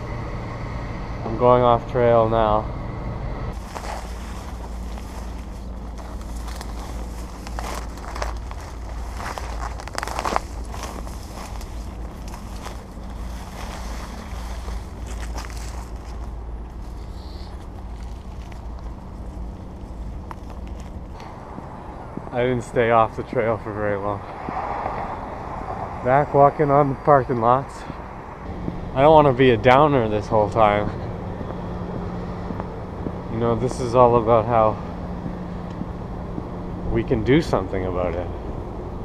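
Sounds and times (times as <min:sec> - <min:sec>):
faint steady hum: 0:00.0 - 0:24.5
wind rumble on microphone: 0:03.3 - 0:39.0
footsteps through dry grass: 0:03.6 - 0:22.3.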